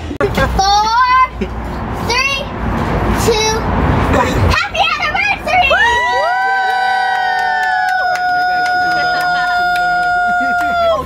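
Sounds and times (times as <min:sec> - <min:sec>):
people cheering with held shouts: 0:05.7 - 0:11.0.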